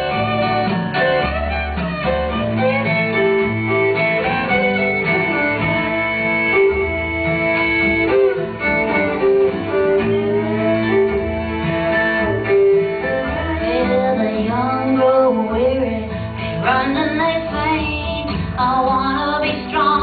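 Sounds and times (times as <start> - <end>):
fiddle playing long notes: 0.0 - 16.1
strummed acoustic guitars: 0.0 - 20.0
upright bass: 0.0 - 20.0.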